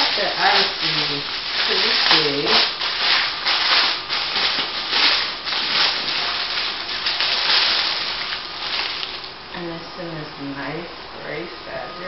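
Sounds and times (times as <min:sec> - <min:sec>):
crinkly packaging rustling: 0:00.0 - 0:09.5.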